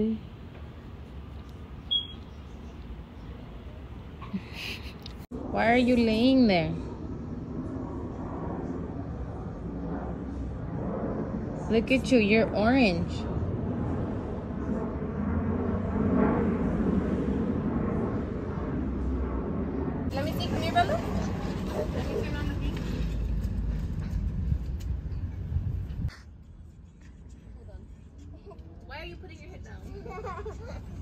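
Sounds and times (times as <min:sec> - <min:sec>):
low outdoor rumble: 0:00.0 - 0:31.0.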